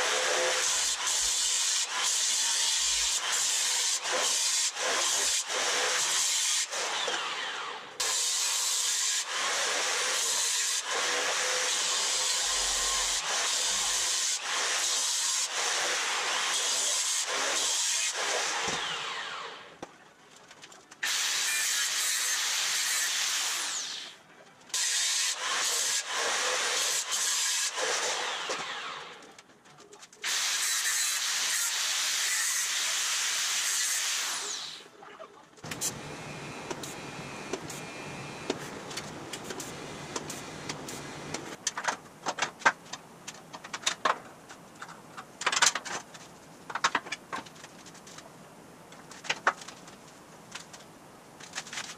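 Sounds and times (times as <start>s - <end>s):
angle grinder grinding steel: 0.0s - 19.6s.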